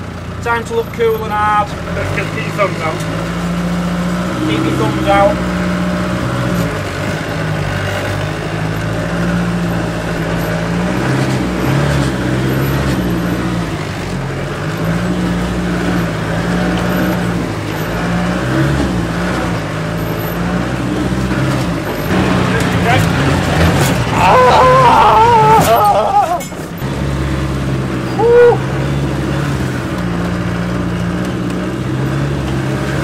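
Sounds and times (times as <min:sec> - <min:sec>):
engine revving off-road: 0:00.0 - 0:33.0
man yelling: 0:24.1 - 0:26.4, 0:28.1 - 0:28.7.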